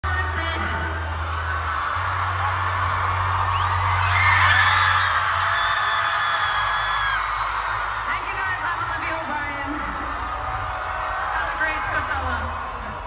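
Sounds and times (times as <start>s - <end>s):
crowd screaming and whooping: 0.0s - 13.0s.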